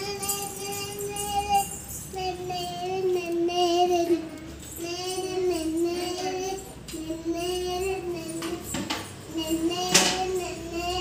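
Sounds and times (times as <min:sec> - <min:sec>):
child singing: 0:00.0 - 0:11.0.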